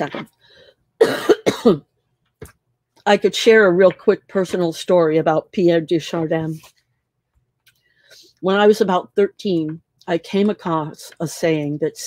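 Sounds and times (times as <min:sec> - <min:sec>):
woman coughing: 0:01.0 - 0:01.9.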